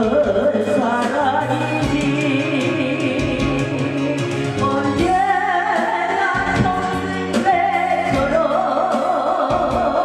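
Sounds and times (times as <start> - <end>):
instrumental accompaniment: 0.0 - 10.0
woman singing into a microphone: 0.0 - 10.0.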